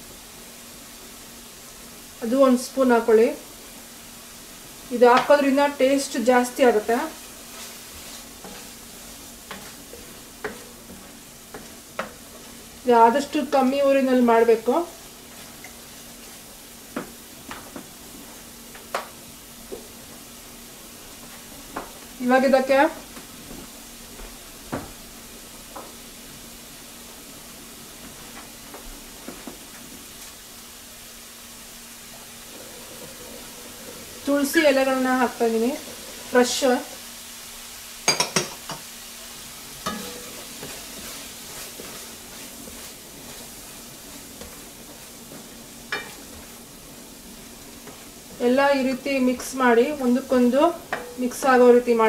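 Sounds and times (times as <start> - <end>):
vegetables sizzling in a frying pan: 0.0 - 52.0
spatula scraping and tapping pan: 7.5 - 12.6, 39.8 - 43.6, 44.2 - 46.5, 50.9 - 51.4.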